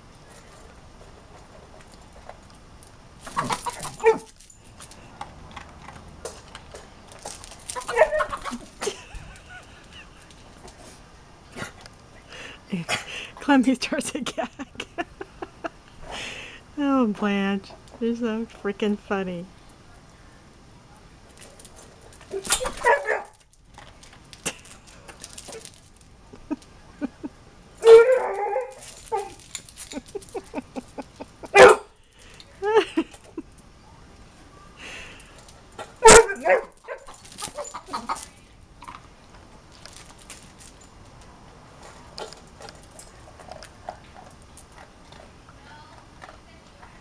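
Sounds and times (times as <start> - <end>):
dog yipping: 3.3 - 4.3, 7.8 - 8.6, 22.3 - 23.3, 27.8 - 29.4, 31.5 - 31.8, 36.0 - 38.1
dog barking: 3.4 - 4.3, 7.9 - 8.3, 22.6 - 23.3, 27.8 - 29.4, 31.5 - 31.9, 36.0 - 37.1.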